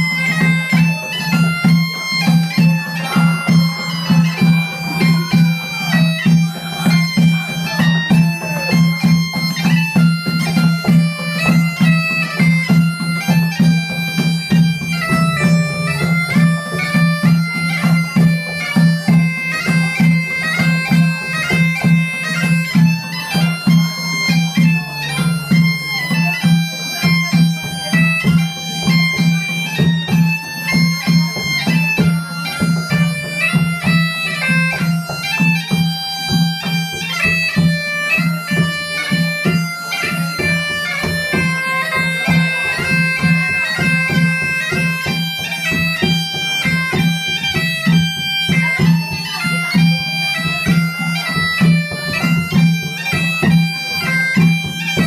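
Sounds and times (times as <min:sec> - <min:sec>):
bagpipe march over drone: 0:00.0 - 0:55.0
drum beat: 0:06.2 - 0:24.3.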